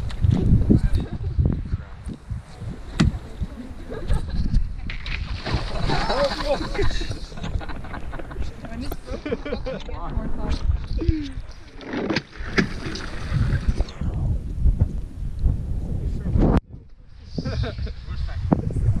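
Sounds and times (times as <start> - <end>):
wind buffeting microphone: 0.0 - 11.7, 12.3 - 19.0.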